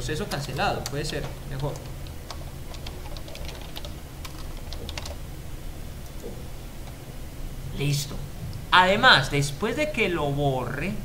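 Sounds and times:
computer keyboard typing: 0.0s - 5.2s.

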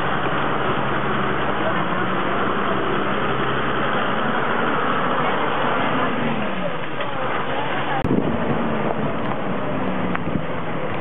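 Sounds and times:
motor running steadily: 0.0s - 11.0s
wind noise on microphone: 8.0s - 11.0s.

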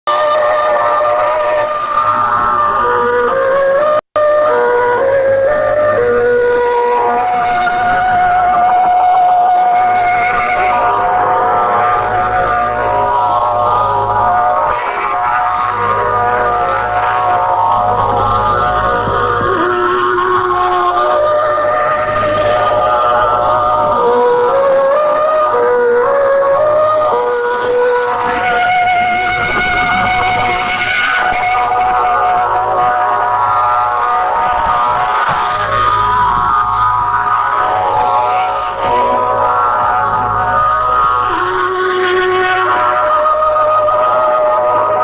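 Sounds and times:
radio music with sustained notes: 0.1s - 45.0s.

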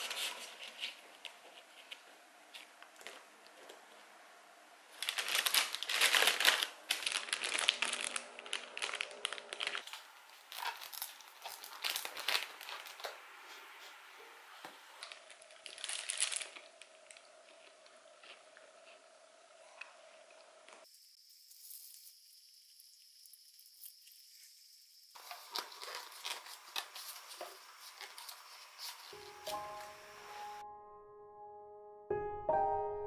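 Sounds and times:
plastic bag crinkling: 4.9s - 14.0s, 14.6s - 17.8s, 25.2s - 30.6s.

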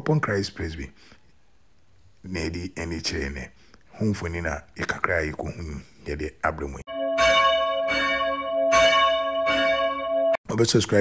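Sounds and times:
church bell ringing: 6.9s - 10.4s.

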